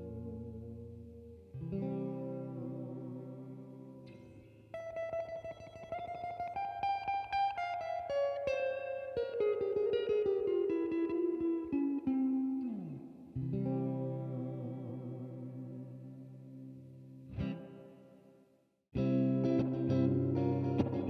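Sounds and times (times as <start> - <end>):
guitar chord strum: 0.0 - 16.6, 19.0 - 21.0
clean electric guitar lead: 0.0 - 18.1, 19.0 - 21.0.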